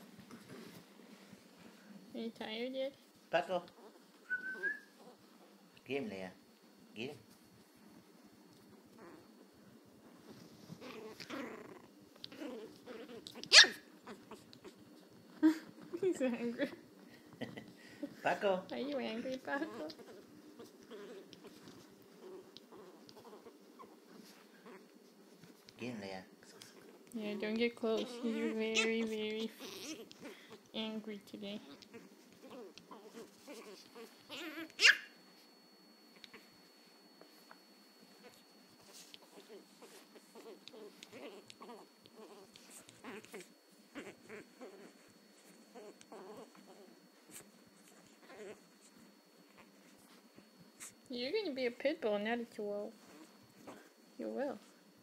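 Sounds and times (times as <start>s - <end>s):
puppy growling: 8.8s - 9.5s, 10.7s - 16.0s, 19.1s - 30.7s, 31.6s - 35.1s, 38.1s - 51.0s, 53.0s - 54.0s
high-pitched dog bark: 13.5s - 13.8s, 34.8s - 35.1s.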